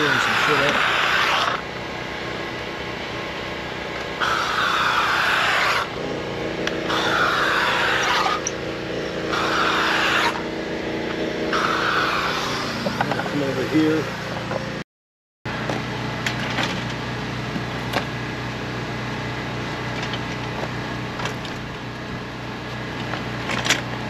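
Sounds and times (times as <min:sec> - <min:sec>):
steamer nozzle hissing: 0:00.0 - 0:01.5, 0:04.2 - 0:05.9, 0:09.3 - 0:10.4, 0:11.5 - 0:13.0
steady low hum: 0:00.0 - 0:14.8, 0:15.5 - 0:24.0.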